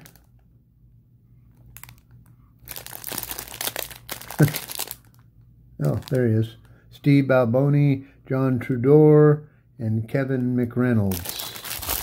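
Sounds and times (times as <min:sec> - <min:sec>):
plastic wrapper crinkling and tearing: 0:00.0 - 0:00.3, 0:01.6 - 0:06.7, 0:11.0 - 0:12.0.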